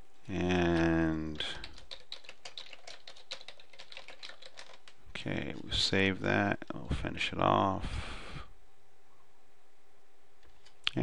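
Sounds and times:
typing on computer keyboard: 0:00.8 - 0:05.0.

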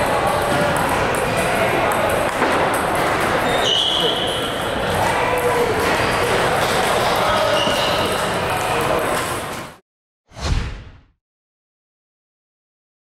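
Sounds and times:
many voices talking: 0:00.0 - 0:09.8
whoosh with deep boom: 0:10.3 - 0:11.2.

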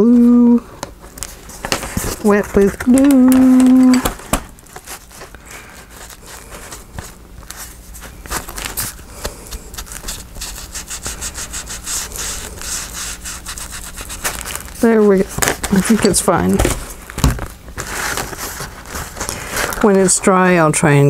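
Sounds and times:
tool scrubbing over paper: 0:04.8 - 0:16.9.

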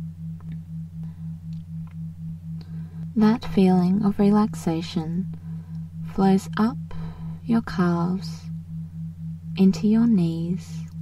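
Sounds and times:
pulsing low electronic tone: 0:00.0 - 0:11.0
steady low hum: 0:00.0 - 0:11.0.

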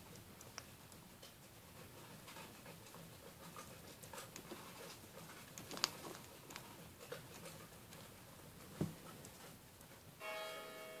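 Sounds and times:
bell-like chime ringing: 0:10.2 - 0:11.0.

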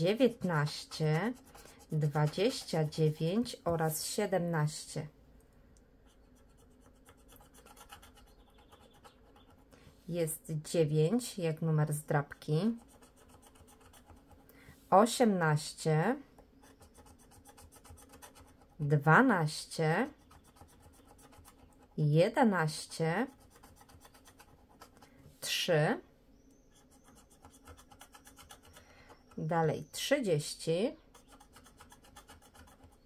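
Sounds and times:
scratching a scratch card: 0:00.3 - 0:03.6, 0:06.1 - 0:09.7, 0:12.4 - 0:14.4, 0:16.6 - 0:18.8, 0:19.8 - 0:22.0, 0:23.0 - 0:25.1, 0:26.7 - 0:29.4, 0:31.0 - 0:33.0.

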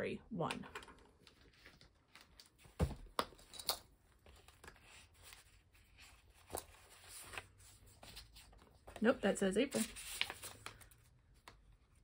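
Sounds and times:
paper rustling: 0:04.1 - 0:12.0.

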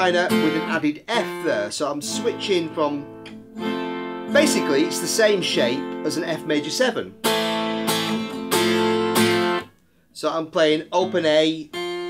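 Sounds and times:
acoustic guitar strumming: 0:00.0 - 0:09.8, 0:10.9 - 0:12.0.

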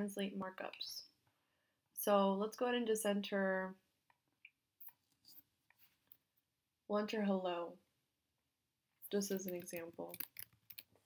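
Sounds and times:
person speaking: 0:09.0 - 0:10.4
computer mouse clicks: 0:09.4 - 0:10.9.

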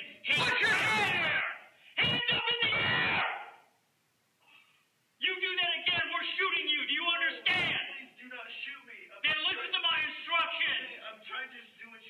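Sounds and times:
man yelling: 0:00.0 - 0:03.7, 0:05.2 - 0:08.2, 0:09.2 - 0:11.5.

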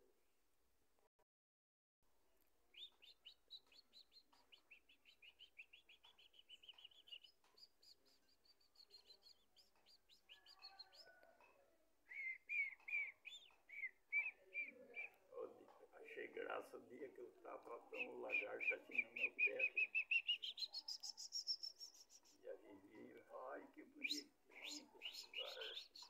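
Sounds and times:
birds chirping: 0:02.6 - 0:11.4, 0:12.0 - 0:26.0.

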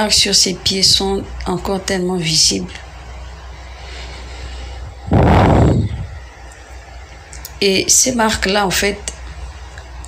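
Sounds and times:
faint low steady hum: 0:00.0 - 0:10.0
loud burst of rumbling: 0:04.8 - 0:06.3.

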